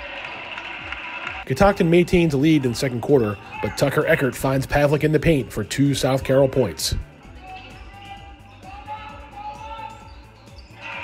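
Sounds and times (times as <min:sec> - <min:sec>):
faint crowd and voices: 0:00.0 - 0:11.0
shoe squeaks: 0:07.7 - 0:11.0.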